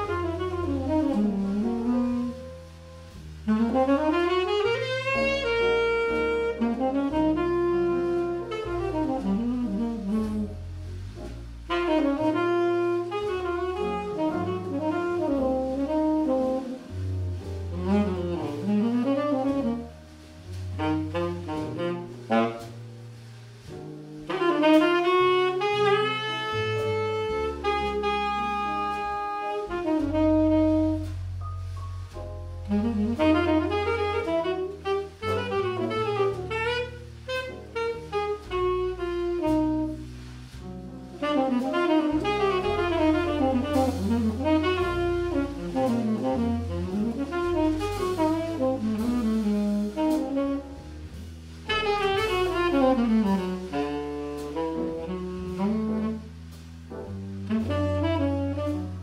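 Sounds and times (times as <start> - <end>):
jazz saxophone: 0.0 - 59.0
walking bass line: 0.0 - 59.0.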